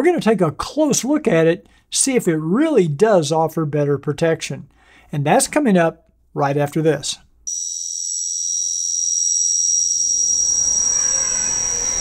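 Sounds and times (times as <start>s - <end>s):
high-pitched electronic whine: 7.5s - 12.0s.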